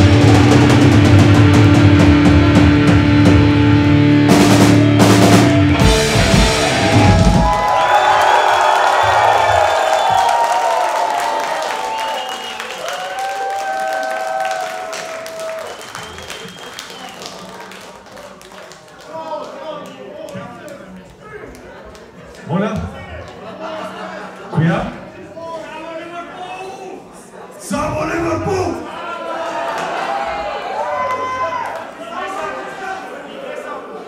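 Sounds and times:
live metal band playing: 0.0s - 7.8s
crowd cheering and shouting: 0.0s - 16.2s, 27.8s - 34.0s.

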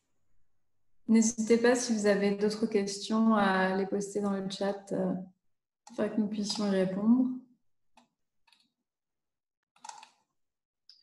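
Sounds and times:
computer keyboard clicks: 9.8s - 10.2s.

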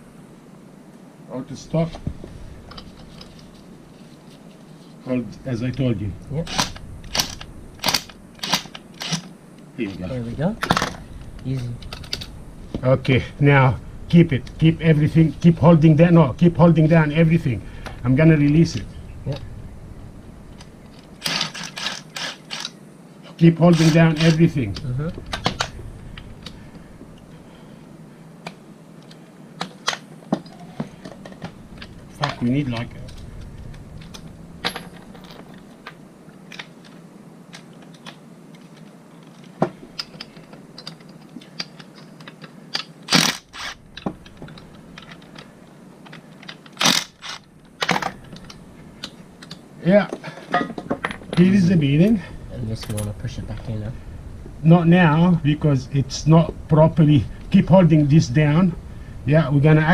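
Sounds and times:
cordless power tool driving screw: 21.2s - 22.7s, 43.1s - 43.8s, 46.8s - 47.4s.

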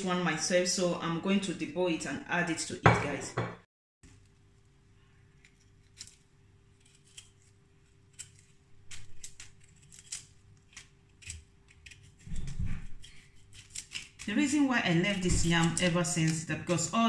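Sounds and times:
knife scraping yam skin: 5.4s - 17.0s.

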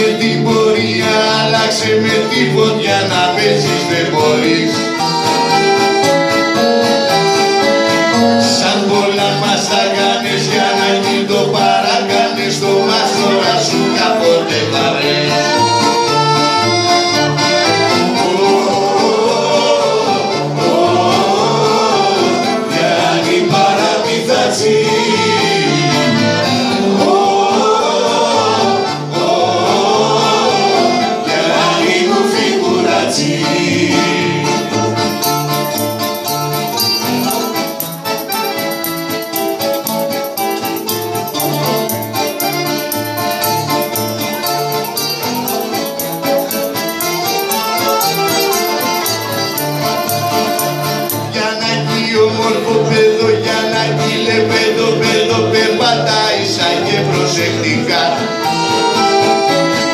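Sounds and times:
person singing: 0.0s - 5.7s, 7.1s - 59.9s
accordion melody: 0.0s - 59.9s
bouzouki: 0.0s - 59.9s
guitar: 0.0s - 59.9s.

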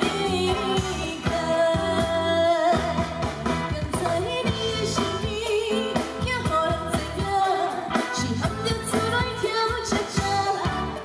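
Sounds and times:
band playing pop music: 0.0s - 11.0s
steady drum beat: 0.0s - 11.0s
woman singing into microphone: 0.0s - 11.0s.

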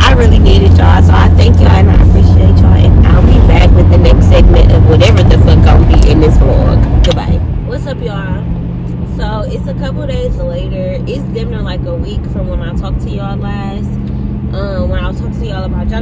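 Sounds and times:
woman talking: 0.0s - 8.5s, 9.1s - 16.0s
car cabin rumble: 0.0s - 16.0s.

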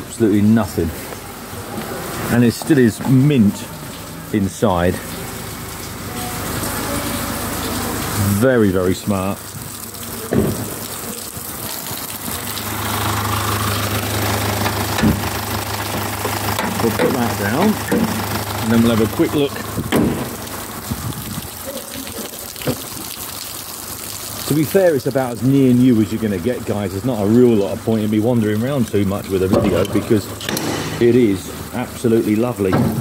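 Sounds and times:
steady rain: 0.0s - 33.0s.

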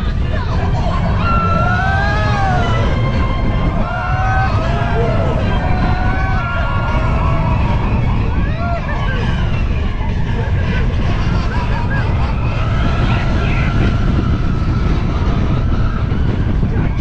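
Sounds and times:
riders shouting: 0.0s - 10.6s
roller coaster running on track: 0.0s - 17.0s
wind rush on microphone: 0.0s - 17.0s.

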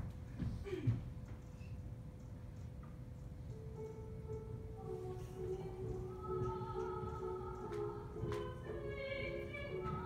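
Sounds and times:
footsteps on wooden stage: 0.0s - 1.7s, 5.8s - 10.0s
recorded music with sustained notes: 3.5s - 10.0s.

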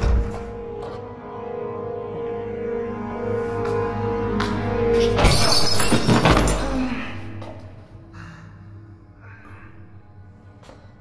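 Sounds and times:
film score of low tones: 0.0s - 11.0s
glass shattering: 5.2s - 6.6s.

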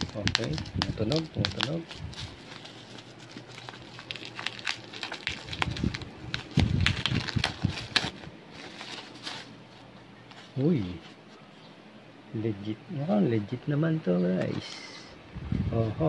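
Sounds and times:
bubble wrap crinkling: 0.0s - 11.3s.

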